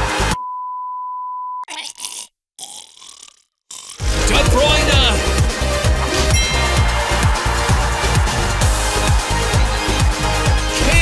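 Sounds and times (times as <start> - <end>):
man choking and grunting: 1.7 - 4.1.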